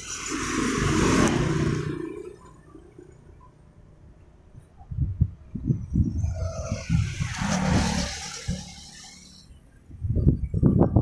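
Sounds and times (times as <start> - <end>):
vehicle passing close by: 0.0 - 3.1, 5.9 - 9.8
wind buffeting microphone: 4.5 - 8.8, 9.4 - 11.0.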